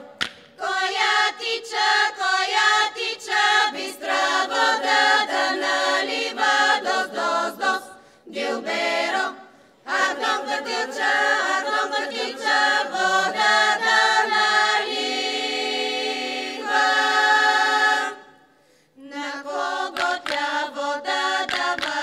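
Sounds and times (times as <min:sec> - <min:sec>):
women's choir singing a cappella: 0:00.0 - 0:22.0.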